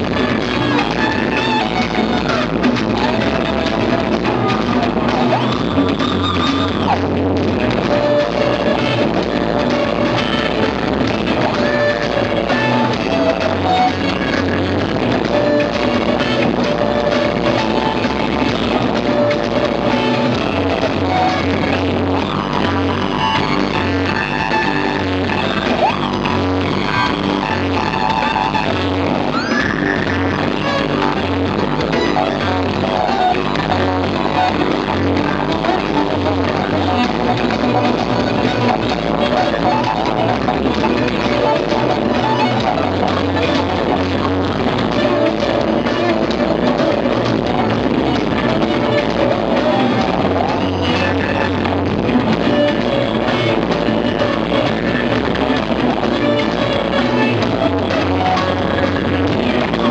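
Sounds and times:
drum backing: 0:00.0 - 0:59.9
electric guitar rock melody: 0:00.0 - 0:59.9.

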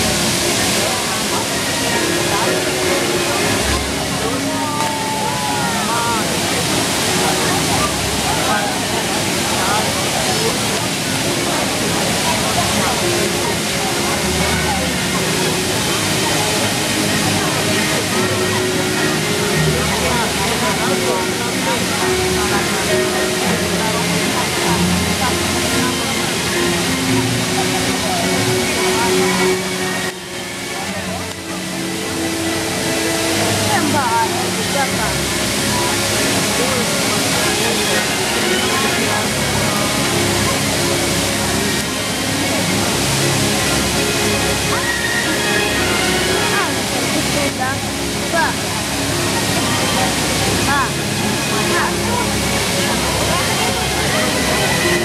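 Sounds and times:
crowd chatter: 0:00.0 - 0:55.0
fountain water rushing: 0:00.0 - 0:55.0.

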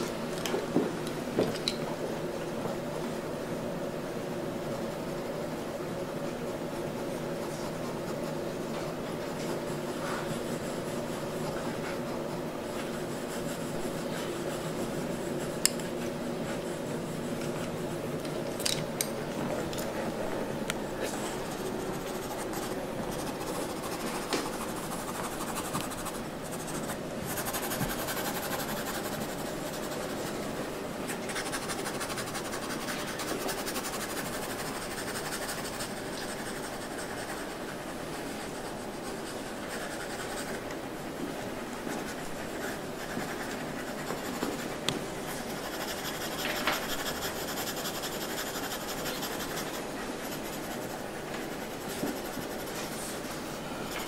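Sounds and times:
pencil scratching on paper: 0:06.3 - 0:18.2, 0:21.0 - 0:54.0.

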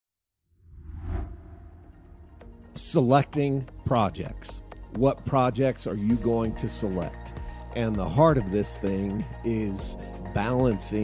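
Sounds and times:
whoosh transition effect: 0:00.6 - 0:02.6
low rumble: 0:00.7 - 0:02.7.

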